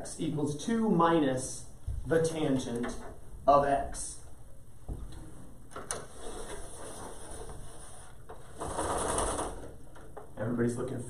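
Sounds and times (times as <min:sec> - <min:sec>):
chart sheet unrolling whir: 0:06.0 - 0:09.7
spring roller click: 0:08.4 - 0:09.8.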